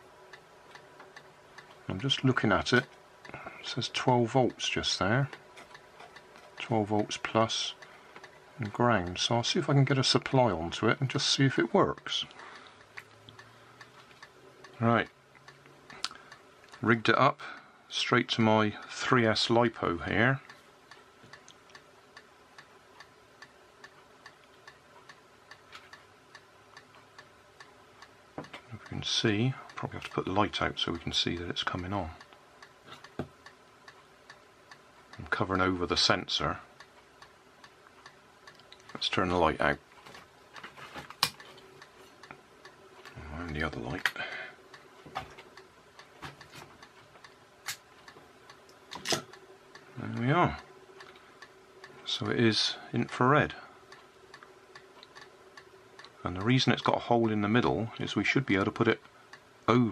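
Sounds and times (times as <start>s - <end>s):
faint regular ticking: 0.0s - 59.9s
faint steady hum: 0.0s - 59.9s.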